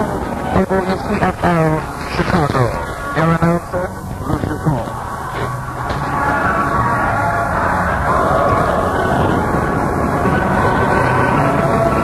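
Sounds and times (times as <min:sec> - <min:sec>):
recording hiss and static: 0:00.0 - 0:12.0.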